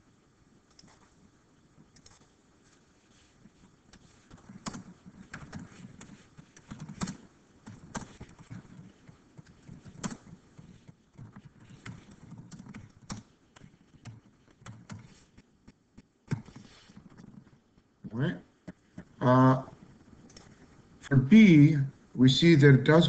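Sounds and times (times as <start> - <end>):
computer keyboard typing: 1.9 - 2.3, 3.9 - 15.4, 16.3 - 17.6, 20.2 - 20.6.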